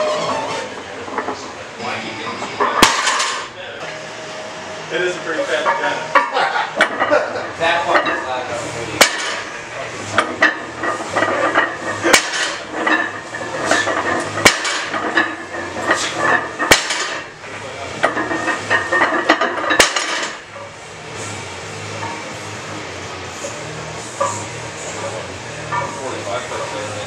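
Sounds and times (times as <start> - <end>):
plates rattling: 9.0 - 17.4, 18.0 - 20.5
barbell plates clanking on floor: 10.1 - 17.3.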